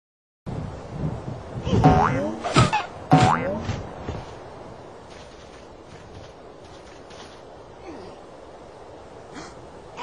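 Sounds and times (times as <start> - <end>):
cartoon spring boing: 1.8 - 2.4, 3.1 - 3.6.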